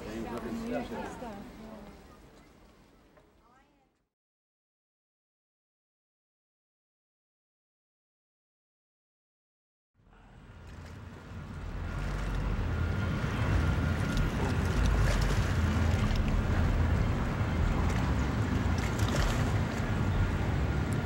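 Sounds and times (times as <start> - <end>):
sea waves on rocky shore: 11.6 - 20.8.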